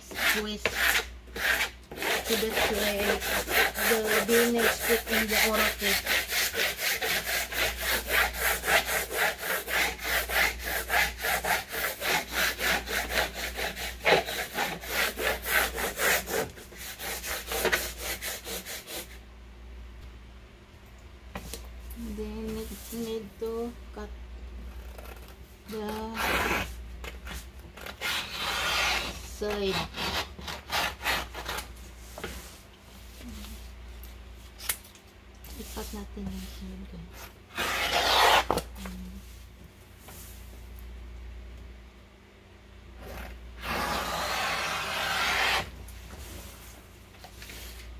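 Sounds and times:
plastic squeegee scraping vinyl: 43.1 - 45.7.

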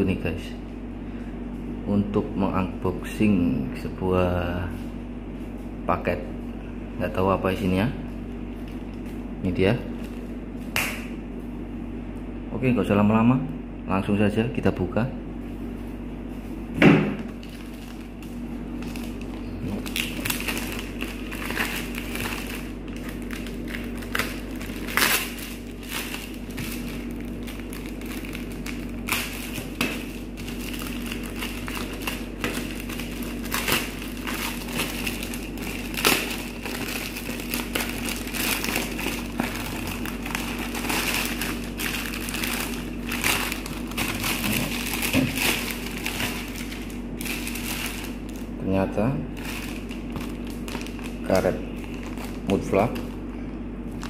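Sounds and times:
steady low hum: 0.0 - 54.0
plastic mailer bag crinkling: 17.3 - 48.6, 49.3 - 53.2.

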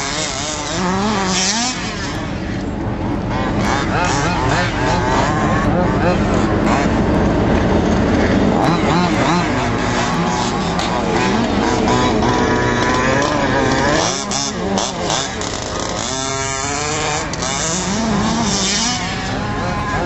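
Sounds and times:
two-stroke engine revving: 0.0 - 20.0.

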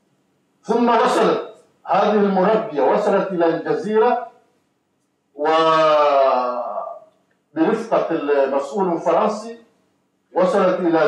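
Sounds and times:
man's drawn-out hesitation sound: 0.7 - 4.2.

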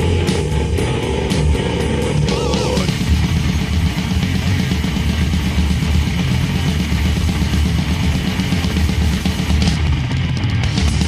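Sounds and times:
distorted electric guitars: 0.0 - 11.0
drum kit playing: 0.0 - 11.0.

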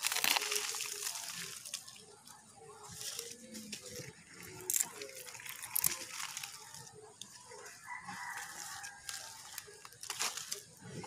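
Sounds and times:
leaves and stems rustling: 0.0 - 11.0.

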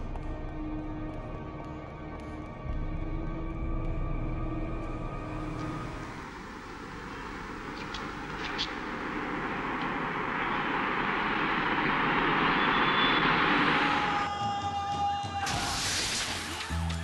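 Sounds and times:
steady rushing roar: 3.1 - 14.3.

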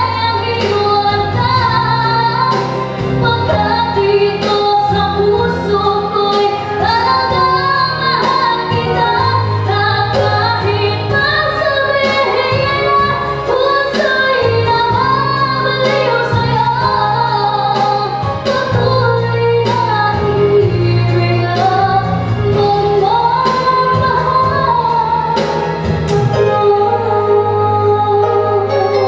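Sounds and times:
girl singing into a microphone: 0.0 - 29.0
instrumental music with beat: 0.0 - 29.0.

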